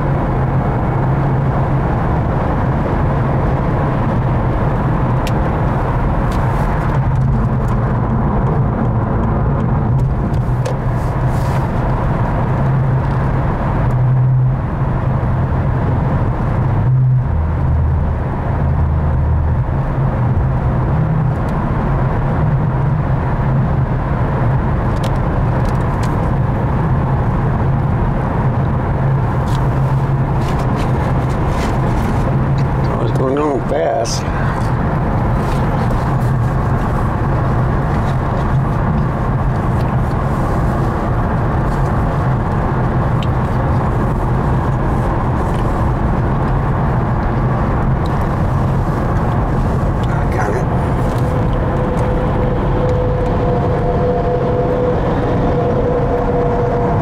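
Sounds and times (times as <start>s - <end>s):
car cabin road and engine hum: 0.0s - 57.0s.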